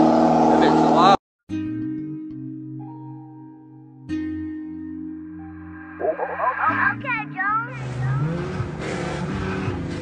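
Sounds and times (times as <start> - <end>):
car engine revving: 0.0 - 1.2, 5.4 - 10.0.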